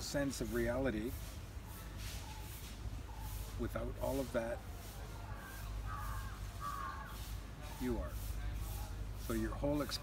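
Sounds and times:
crow cawing: 5.3 - 7.4.

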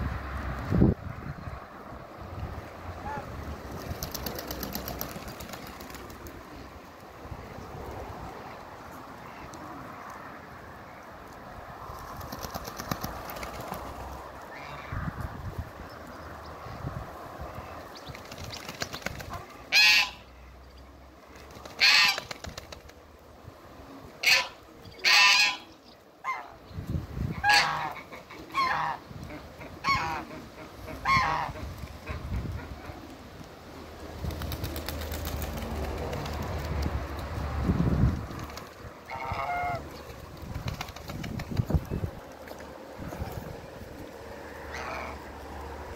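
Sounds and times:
geese plucking grass: 2.4 - 16.1, 17.2 - 20.6, 21.2 - 26.6, 27.2 - 45.9
goose high call: 19.4 - 20.3, 24.2 - 26.6, 27.4 - 29.0, 39.1 - 39.8, 44.7 - 45.3
geese honking: 19.7 - 20.3, 21.8 - 22.2, 24.2 - 25.7, 27.4 - 32.3, 39.0 - 39.9, 44.6 - 45.3.

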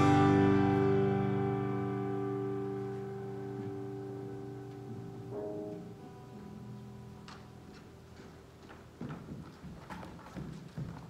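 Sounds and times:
footsteps on a stage floor: 2.7 - 11.0.

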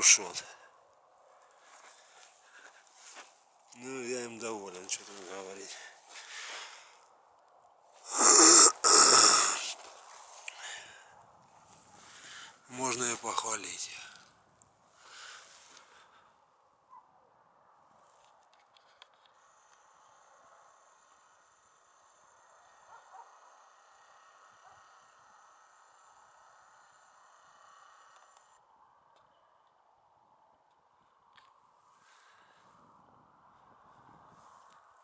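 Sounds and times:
faint outdoor ambience: 0.0 - 35.0
camera zoom motor whine: 19.4 - 28.6
faint clicks: 28.0 - 29.8.

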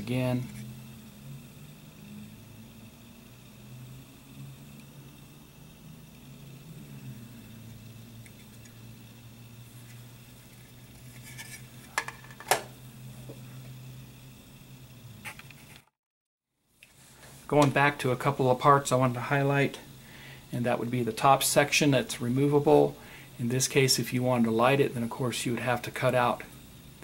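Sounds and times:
steady low hum: 0.0 - 15.7.

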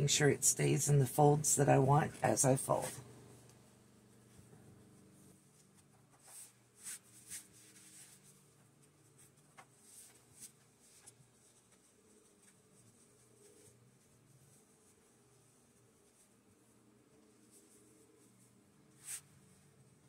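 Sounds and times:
low room hum: 0.0 - 20.0
fabric brushing and rustling: 2.8 - 20.0.

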